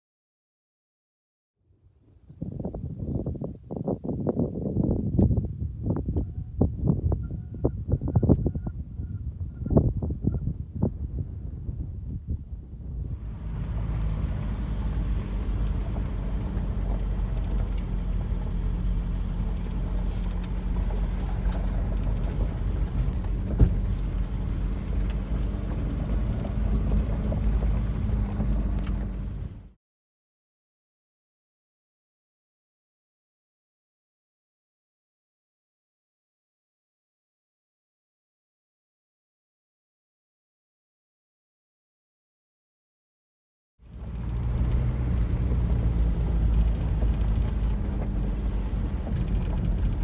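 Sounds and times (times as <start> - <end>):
car rumbling and knocking: 13.0 - 29.7, 43.9 - 50.0
engine drone: 13.0 - 29.7, 43.8 - 50.0
tyres on gravel: 13.2 - 29.6.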